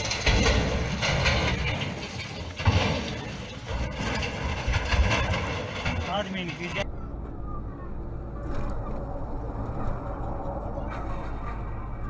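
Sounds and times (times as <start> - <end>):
landslide rumble: 0.0 - 12.0.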